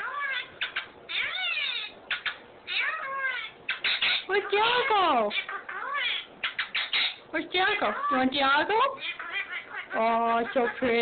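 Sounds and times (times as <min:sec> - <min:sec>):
parrot squawking and calling: 0:00.0 - 0:11.0.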